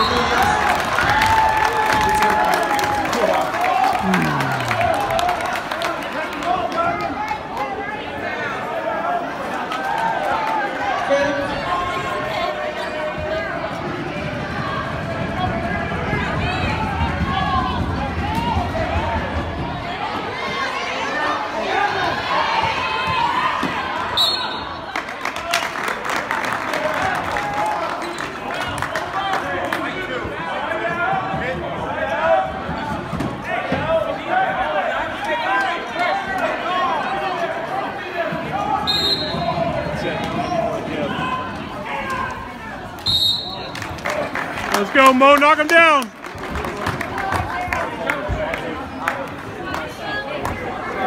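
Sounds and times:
crowd chatter: 0.0s - 51.0s.

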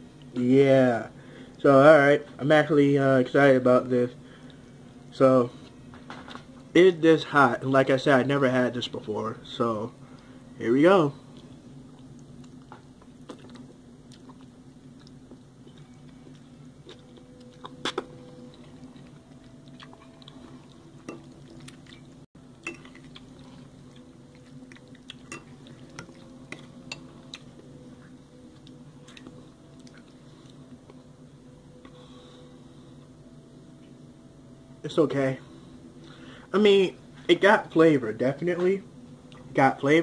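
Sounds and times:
steady low hum: 0.0s - 40.0s
person chewing noodles: 11.4s - 31.1s.

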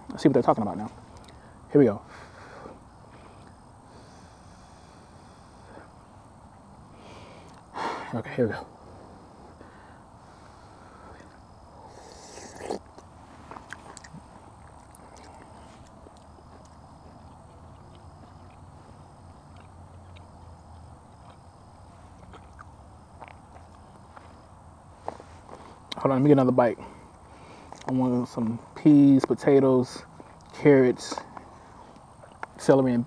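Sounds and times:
faint chewing: 7.4s - 7.7s, 10.3s - 26.0s, 26.8s - 28.0s, 30.1s - 32.6s.

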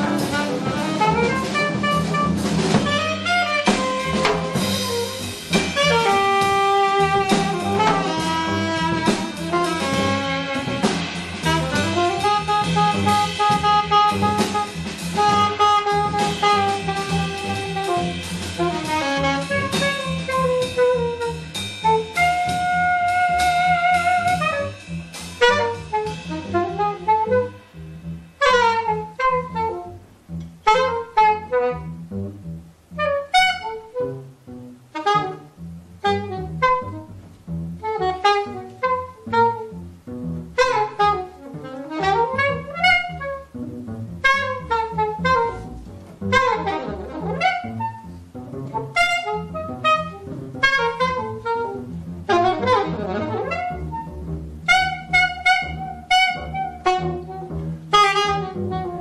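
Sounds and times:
double bass: 0.0s - 59.0s
saxophone improvising jazz: 0.0s - 59.0s.

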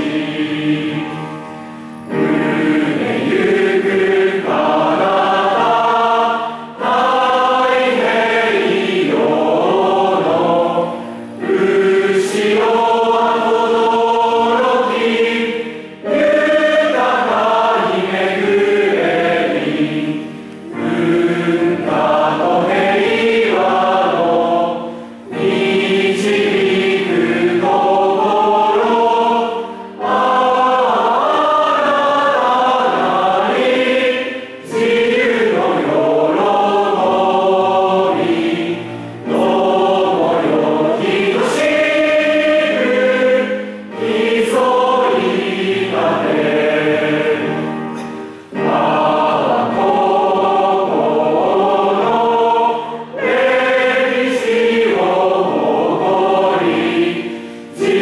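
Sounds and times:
children's choir singing: 0.0s - 58.0s.

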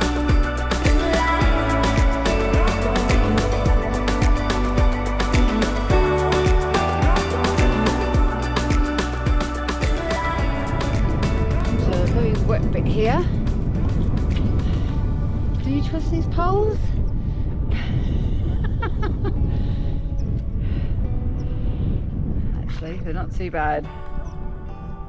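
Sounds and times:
background music: 0.0s - 22.4s, 23.3s - 25.0s
wind buffeting microphone: 10.0s - 25.0s.

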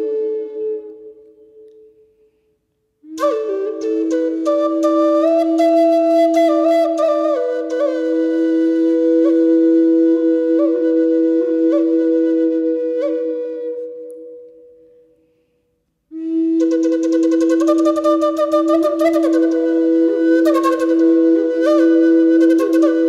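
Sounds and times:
flute playing slow melody: 0.0s - 2.4s, 3.0s - 15.1s, 16.1s - 23.0s.

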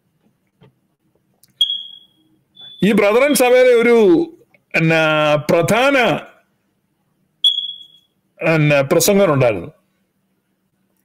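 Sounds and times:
high-pitched electronic beep: 1.6s - 3.0s, 7.4s - 8.1s.

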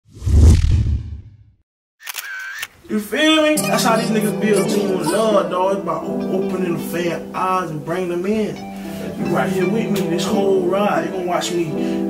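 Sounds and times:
whoosh with deep boom: 0.1s - 1.5s.

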